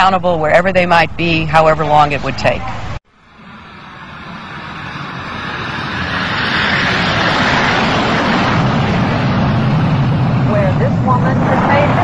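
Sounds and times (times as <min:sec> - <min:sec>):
jet airliner engines roaring: 0:00.0 - 0:12.0.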